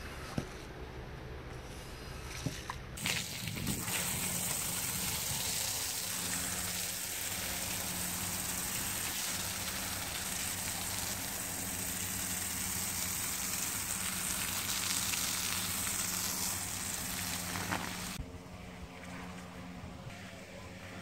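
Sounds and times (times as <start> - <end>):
hose spraying water onto rug: 3.0 - 18.2.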